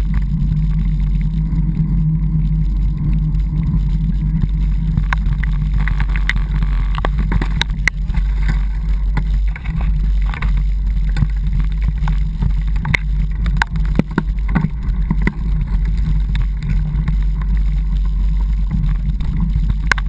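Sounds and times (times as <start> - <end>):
vehicle engine humming: 0.0 - 20.0.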